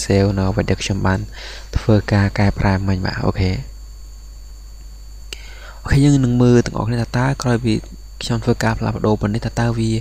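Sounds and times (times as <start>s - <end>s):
man speaking: 0.0s - 3.8s, 5.8s - 10.0s
steady low hum: 0.0s - 10.0s.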